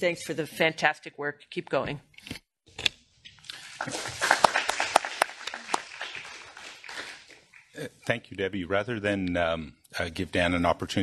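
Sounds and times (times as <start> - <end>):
audience applauding: 3.5 - 7.9.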